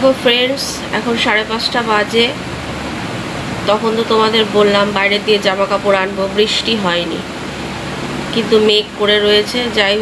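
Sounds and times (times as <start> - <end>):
woman talking: 0.0 - 2.4, 3.6 - 7.4, 8.2 - 10.0.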